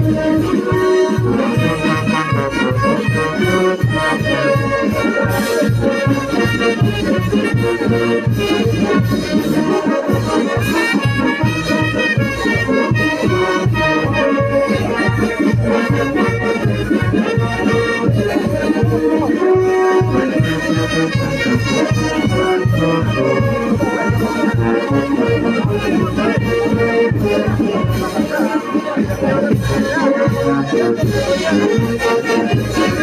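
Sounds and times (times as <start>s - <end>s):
live band dance music: 0.0s - 33.0s.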